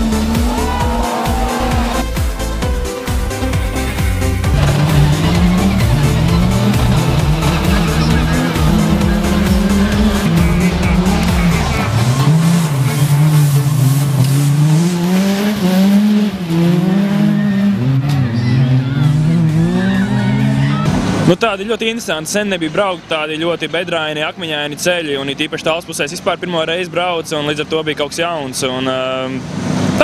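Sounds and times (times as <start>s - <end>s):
background music with pulsing beat: 0.0s - 14.8s
rally car engine revving: 0.0s - 21.5s, 28.6s - 30.0s.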